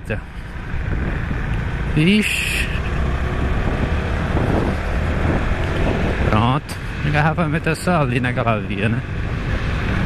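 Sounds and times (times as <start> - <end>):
wind rushing over microphone: 0.6 - 2.0, 2.7 - 10.0.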